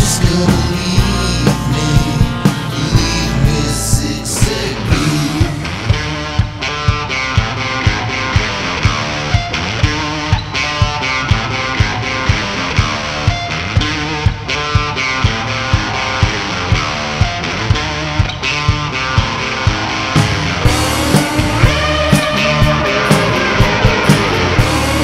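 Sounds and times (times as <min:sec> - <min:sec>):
electric guitar playing: 0:00.0 - 0:25.0
steady drum beat: 0:00.0 - 0:25.0.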